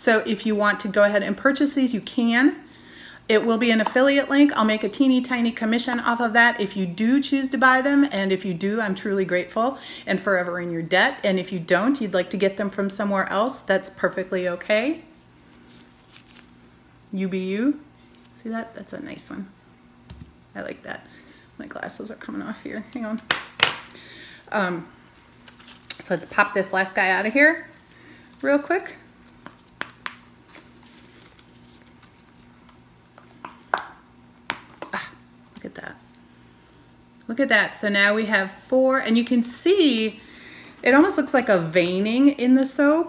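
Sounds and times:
faint steady hum: 0.0s - 43.0s
gloved hands rustling: 15.4s - 16.7s, 23.6s - 33.6s.

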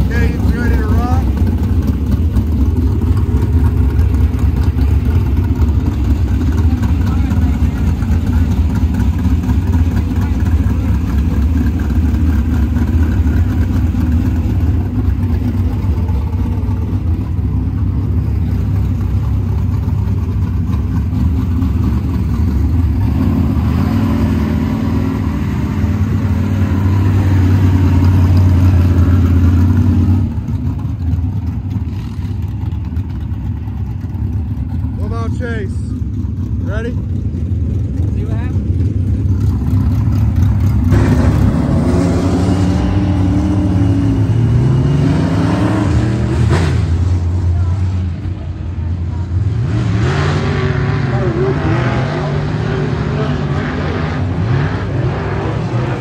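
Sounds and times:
race car engine running: 0.0s - 56.0s.

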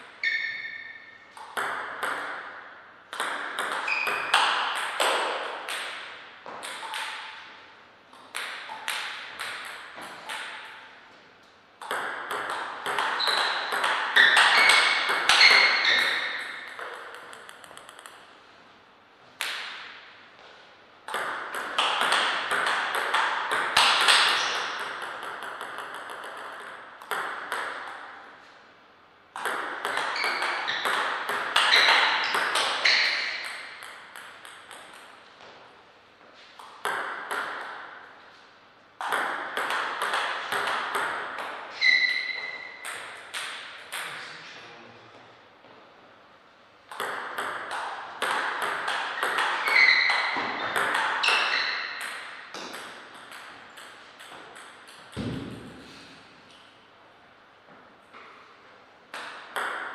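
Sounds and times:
short high squeaks: 0.2s - 1.2s, 13.2s - 16.5s, 41.7s - 42.8s, 49.6s - 50.4s, 51.2s - 51.9s
table tennis ball clicking: 6.6s - 7.4s, 8.2s - 10.8s, 11.8s - 18.3s, 21.1s - 28.1s, 29.4s - 35.2s, 46.9s - 55.5s.

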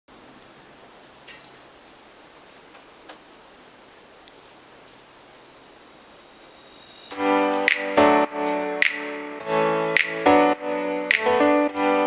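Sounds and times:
insects chirring: 0.1s - 12.0s.

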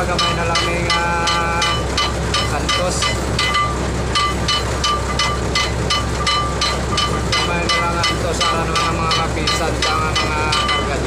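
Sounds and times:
crane engine hum: 0.0s - 11.0s
metallic clinking: 0.0s - 11.0s.

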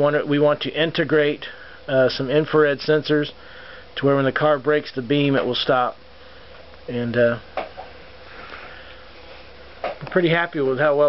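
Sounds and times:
faint steady hum: 0.0s - 11.0s
person breathing in through nose: 3.4s - 3.9s, 8.3s - 9.4s.

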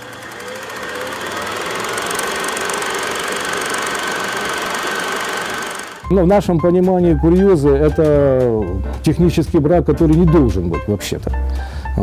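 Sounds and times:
film projector clattering: 0.0s - 6.0s.

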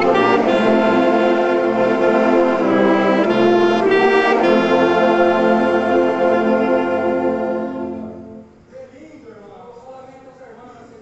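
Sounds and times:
wind instruments and organ chord: 0.0s - 8.7s.

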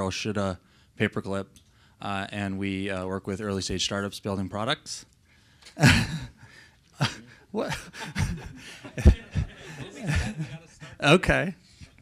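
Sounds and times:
man chuckling into microphone: 7.0s - 11.0s.

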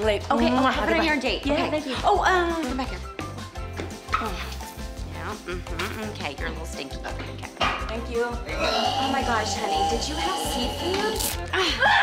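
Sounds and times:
background music with low bass: 0.0s - 12.0s.

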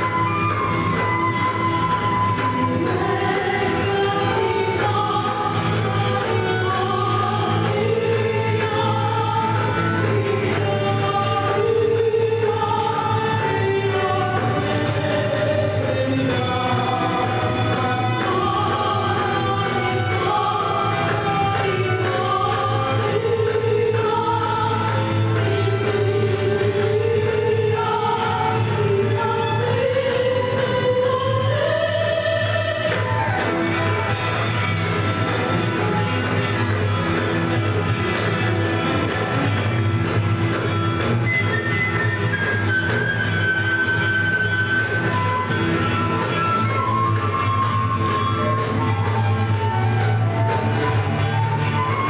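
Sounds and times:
flute: 0.0s - 4.7s, 30.2s - 34.8s, 41.1s - 52.0s
acoustic guitar: 0.0s - 52.0s
bowed string instrument: 0.0s - 52.0s
cello: 0.0s - 52.0s
woman singing into a microphone: 2.8s - 33.5s.

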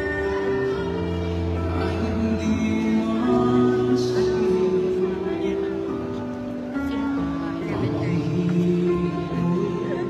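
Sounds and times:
live band playing slow ballad: 0.0s - 10.0s.

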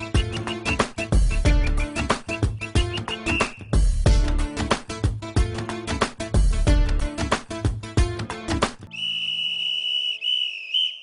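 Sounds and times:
whistle blown on high note: 0.2s - 3.8s, 8.9s - 11.0s.

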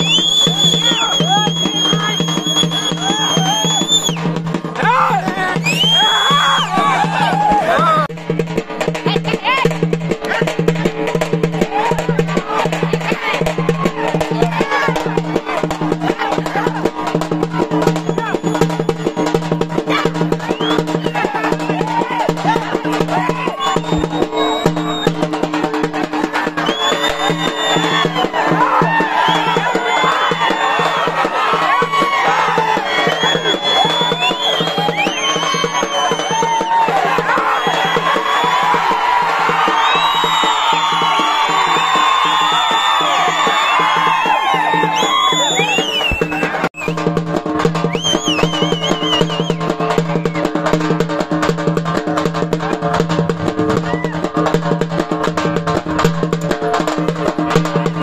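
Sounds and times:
many voices shouting: 0.0s - 3.8s, 4.7s - 8.1s, 11.5s - 24.9s, 25.6s - 46.7s, 52.6s - 54.4s
drumming over a drone: 0.0s - 58.0s.

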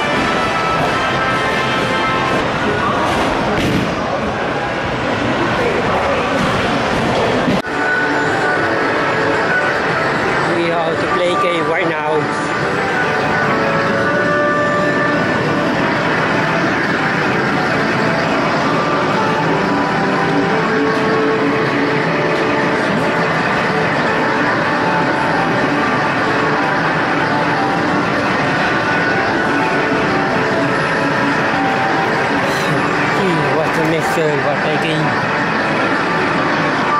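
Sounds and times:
constant wash of noise: 0.0s - 36.9s.

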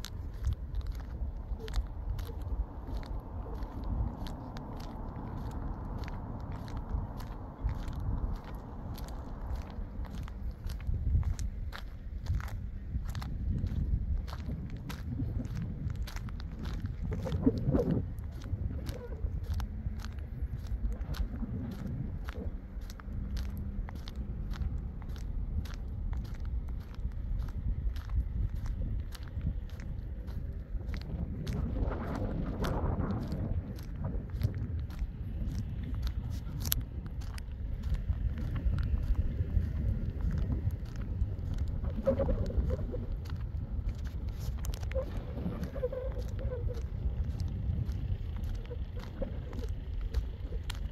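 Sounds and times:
footsteps crunching on gravel: 0.0s - 50.9s
steady low rumble: 0.0s - 50.9s
wind buffeting microphone: 0.0s - 50.9s.

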